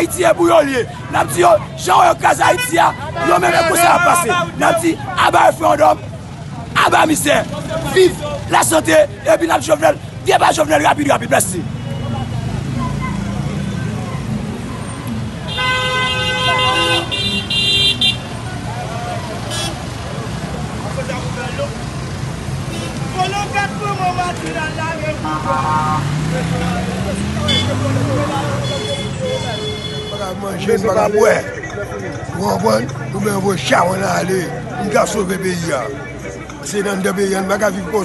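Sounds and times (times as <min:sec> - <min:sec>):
street traffic noise: 0:00.0 - 0:38.0
vehicle horn honking: 0:15.4 - 0:18.3, 0:19.5 - 0:19.8, 0:27.4 - 0:27.8, 0:28.4 - 0:30.4
background voices: 0:30.4 - 0:38.0.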